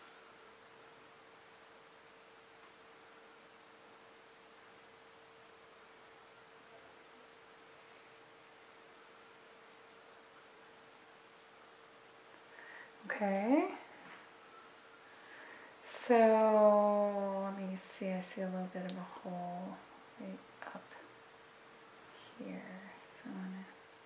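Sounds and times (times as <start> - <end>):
faint low hum: 0.0 - 24.0
steady hiss: 0.0 - 24.0.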